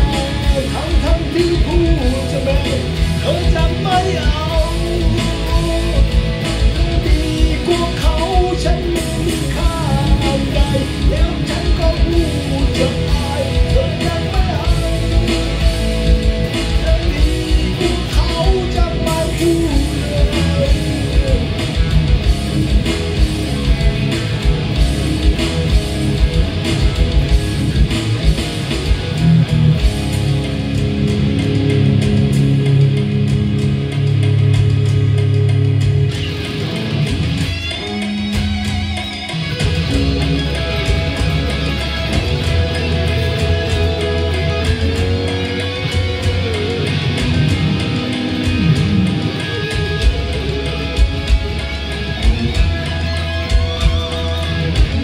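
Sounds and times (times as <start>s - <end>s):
bass guitar: 0.0s - 55.0s
drums: 0.0s - 55.0s
electric guitars playing: 0.0s - 55.0s.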